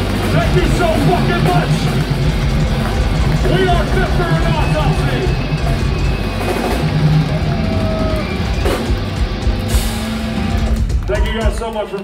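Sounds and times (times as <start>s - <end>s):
metal band playing live: 0.0s - 11.8s.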